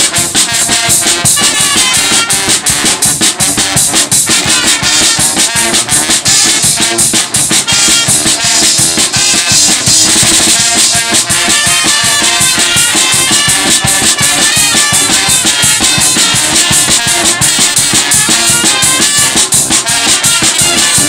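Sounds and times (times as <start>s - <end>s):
brass band playing: 0.0s - 21.0s
cymbals: 0.0s - 21.0s
snare drum beat: 0.0s - 21.0s
trombones and trumpets: 0.0s - 21.0s.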